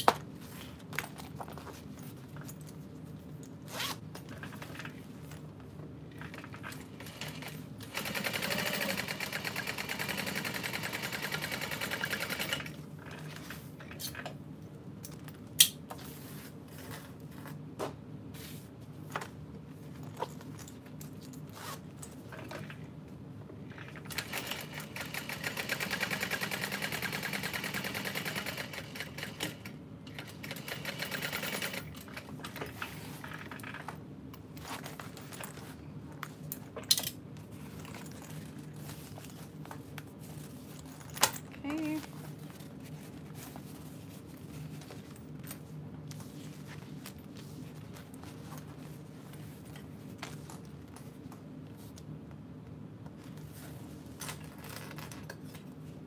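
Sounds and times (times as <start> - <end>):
sewing machine stitching: 6.3 - 12.8, 24.0 - 32.8.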